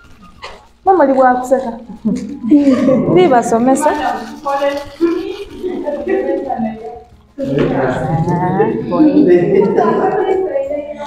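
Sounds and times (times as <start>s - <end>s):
women talking: 0.9s - 11.0s.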